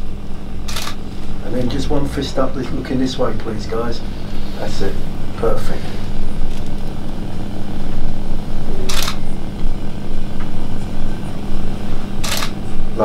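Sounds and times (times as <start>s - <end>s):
low room hum: 0.0s - 13.0s
camera shutter click: 0.7s - 1.0s, 8.9s - 9.2s, 12.2s - 12.6s.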